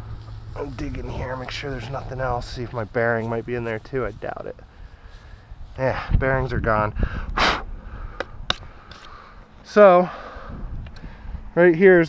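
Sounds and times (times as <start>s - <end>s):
wind rumble on microphone: 0.0s - 8.9s, 10.4s - 12.0s.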